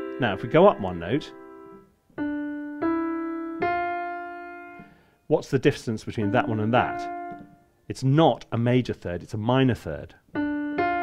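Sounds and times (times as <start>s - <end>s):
piano chord notes ringing: 0.0s - 5.0s, 6.0s - 7.5s, 10.4s - 11.0s.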